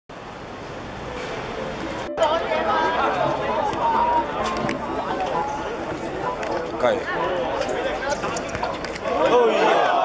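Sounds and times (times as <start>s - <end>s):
indistinct chatter: 1.1s - 10.0s.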